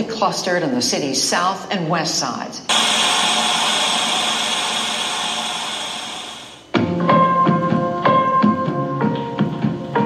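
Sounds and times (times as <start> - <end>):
static hiss: 2.7 - 6.7.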